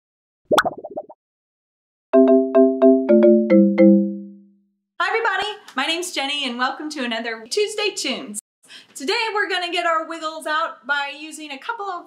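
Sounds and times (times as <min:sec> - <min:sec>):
pop-like flourish: 0:00.5 - 0:01.2.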